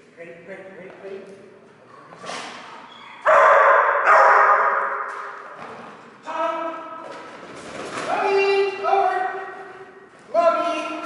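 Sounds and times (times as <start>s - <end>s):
dog barking excitedly: 3.2s - 5.1s.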